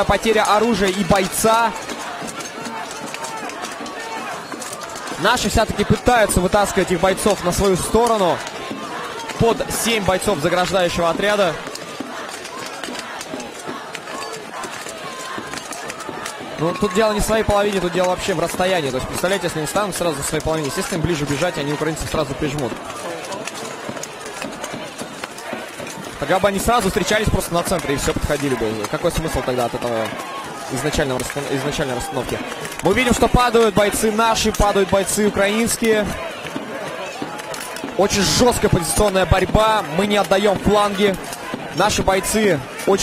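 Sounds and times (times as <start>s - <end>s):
crowd shouting: 0.0s - 43.0s.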